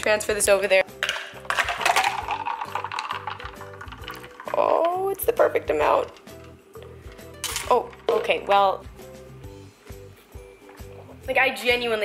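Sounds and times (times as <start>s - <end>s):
thick drink pouring and splashing: 1.6s - 4.8s.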